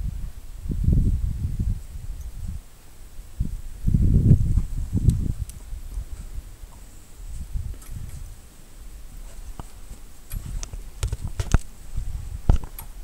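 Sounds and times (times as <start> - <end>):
sharp clicks and knocks: 9.3 - 11.7, 12.5 - 13.0.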